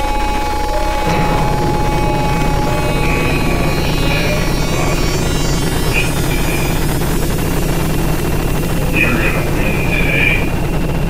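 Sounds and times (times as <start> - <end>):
loud low droning hum: 0.0 - 11.0
faint brief high tones: 0.1 - 10.5.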